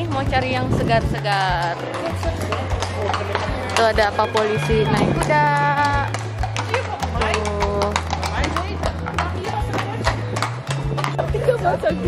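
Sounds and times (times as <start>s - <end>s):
background music with bass line: 0.0s - 12.0s
hooves clip-clopping on pavement: 0.0s - 12.0s.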